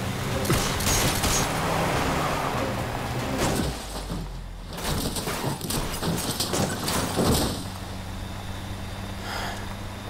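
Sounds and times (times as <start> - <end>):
car engine droning: 0.0 - 10.0.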